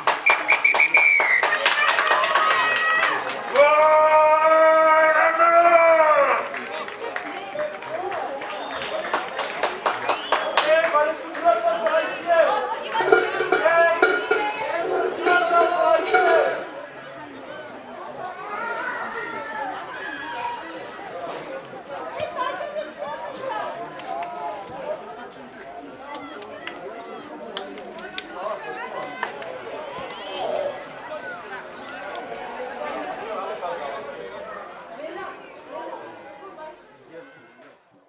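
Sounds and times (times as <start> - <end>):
sharp hand claps: 0.0 - 3.9, 6.6 - 12.0
boys calling out and chattering: 11.0 - 37.7.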